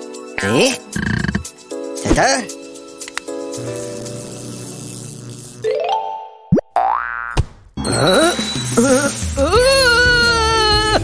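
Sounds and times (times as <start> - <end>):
springy boing glide: 6.5 - 7.4.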